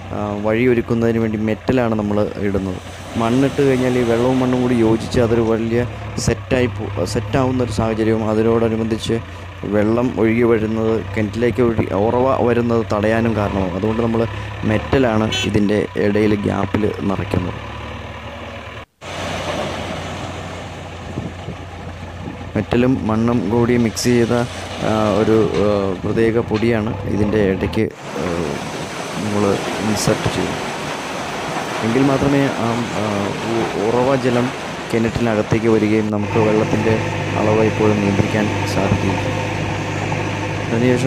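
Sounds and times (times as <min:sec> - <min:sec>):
diesel engine running: 0:00.0 - 0:41.0.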